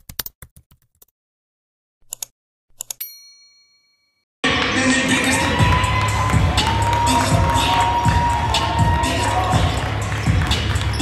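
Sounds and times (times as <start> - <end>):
bright bell-like ding: 3.0 - 4.2
crowd noise: 4.4 - 11.0
music echoing in a hall: 4.5 - 11.0.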